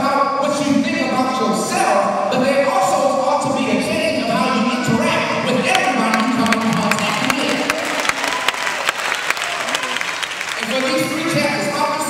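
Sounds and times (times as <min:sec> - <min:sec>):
congregation clapping: 0:05.6 - 0:11.8.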